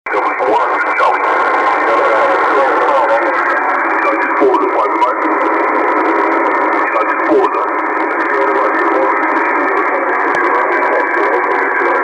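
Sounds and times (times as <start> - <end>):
distant radio voice: 0.1 - 12.0
radio band hiss: 0.1 - 12.0.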